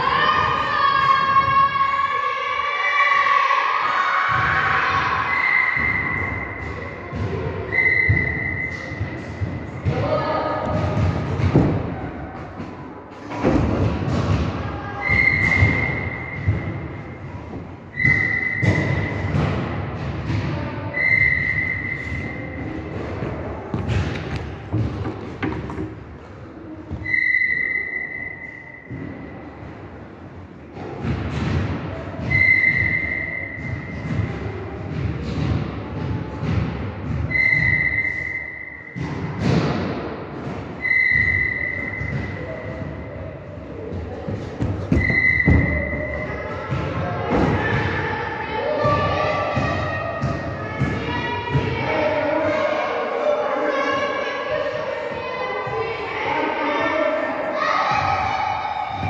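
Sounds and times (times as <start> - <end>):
thuds and footfalls in a hall: 0.0 - 2.1, 3.8 - 59.0.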